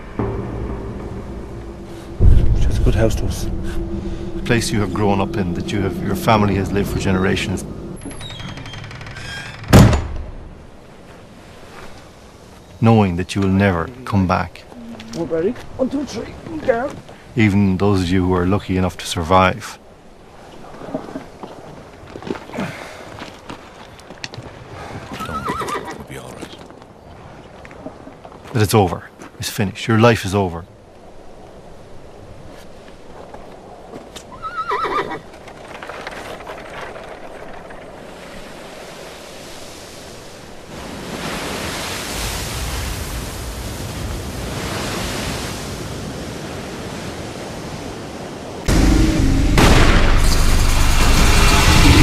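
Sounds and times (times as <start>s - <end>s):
loud boom: 0.0s - 8.3s, 48.7s - 52.0s
rushing noise: 0.0s - 9.6s, 48.6s - 52.0s
horse whinnying: 25.1s - 26.0s, 34.3s - 35.3s.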